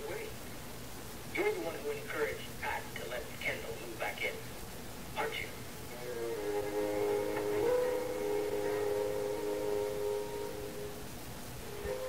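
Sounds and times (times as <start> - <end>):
sustained musical chord: 5.9 - 12.0.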